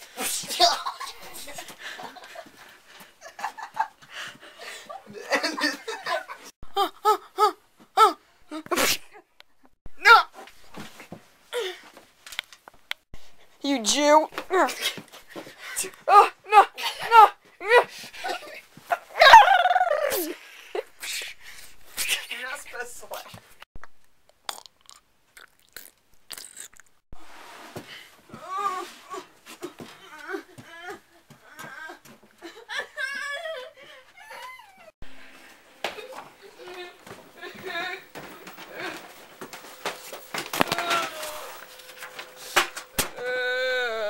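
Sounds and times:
girl's wavering wordless cries: 0:06.7 - 0:08.8, 0:15.9 - 0:18.5, 0:30.0 - 0:32.1, 0:33.0 - 0:34.9, 0:43.2 - 0:44.0
young person's pitched cries: 0:43.2 - 0:44.0.

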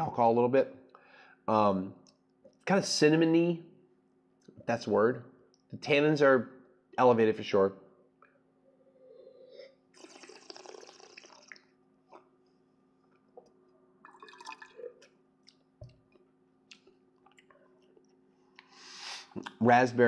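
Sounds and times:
wine slurping: 0:09.0 - 0:11.7, 0:14.0 - 0:15.2
wet liquid mouth sound: 0:10.0 - 0:12.3.

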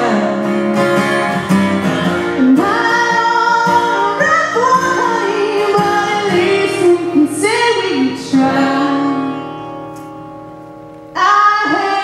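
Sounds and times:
woman singing: 0:00.0 - 0:00.7, 0:02.4 - 0:09.8, 0:11.2 - 0:12.0
acoustic guitar: 0:00.0 - 0:12.0.

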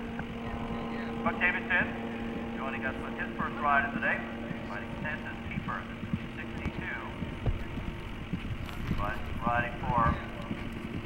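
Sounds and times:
announcer over public address: 0:00.0 - 0:08.0, 0:08.9 - 0:10.7
low thumps: 0:00.0 - 0:11.0
steady low hum: 0:00.0 - 0:11.0.

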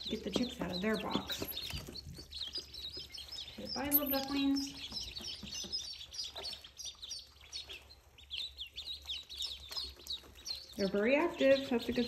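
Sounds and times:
ducklings peeping: 0:00.0 - 0:12.0.

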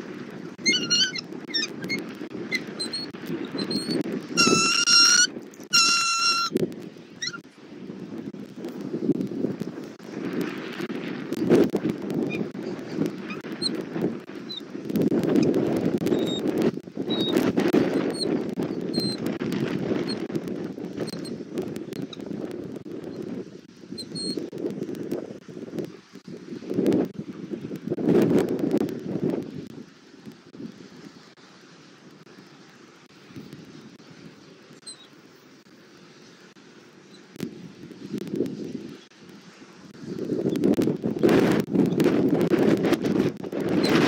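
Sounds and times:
wind gusting on microphone: 0:00.0 - 0:44.0
eaglets peeping: 0:00.6 - 0:06.5, 0:07.2 - 0:07.4.

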